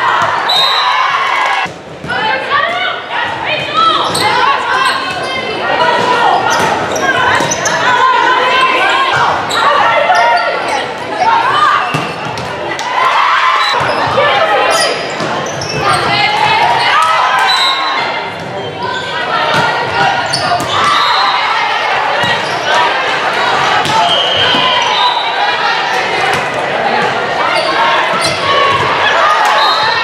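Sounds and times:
people calling and shouting: 0.0s - 30.0s.

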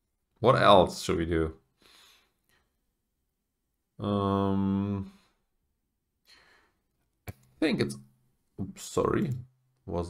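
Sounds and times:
faint breath at microphone: 1.8s - 2.7s
man saying um: 4.0s - 5.2s.

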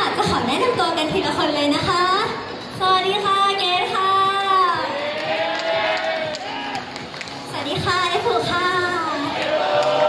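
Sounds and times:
pop backing track over loudspeakers: 0.0s - 10.0s.

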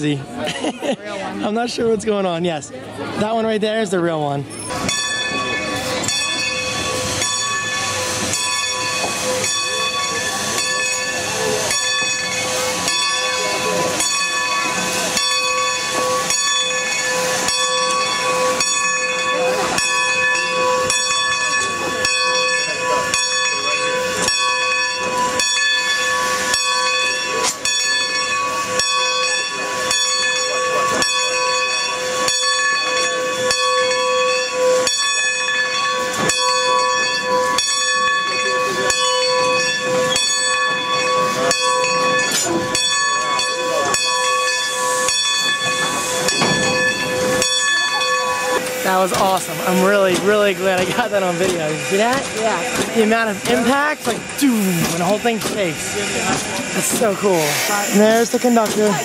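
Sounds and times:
steady multi-tone whine: 4.5s - 59.0s
steam hissing: 4.5s - 59.0s.

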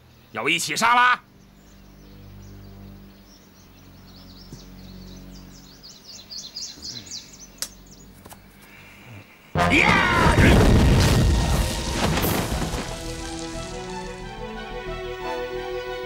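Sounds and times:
low held background music: 0.0s - 10.0s, 12.2s - 16.0s.

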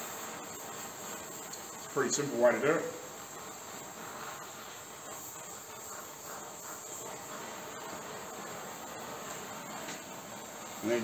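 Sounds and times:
gas torch flame hissing: 0.0s - 11.0s.

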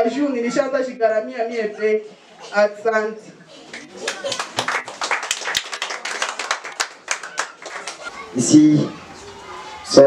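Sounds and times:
group clapping: 3.7s - 8.1s.

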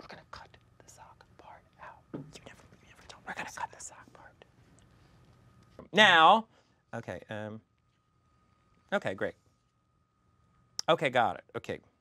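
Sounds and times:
faint whispered speech: 0.0s - 4.5s.

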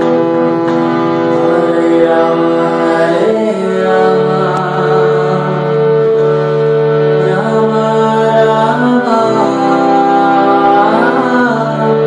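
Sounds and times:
harmonium playing chords: 0.0s - 12.0s
person chanting: 1.4s - 5.8s, 7.2s - 12.0s.

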